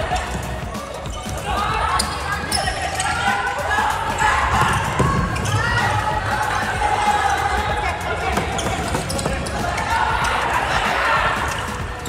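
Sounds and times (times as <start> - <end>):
players calling out: 0.0 - 12.0.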